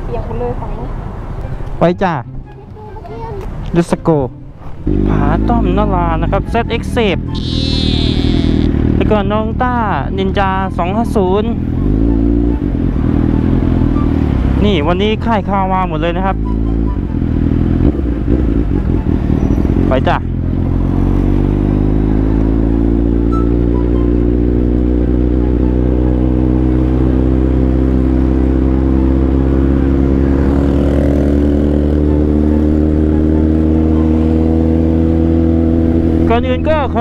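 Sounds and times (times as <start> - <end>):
motorcycle engine: 4.6 - 37.0.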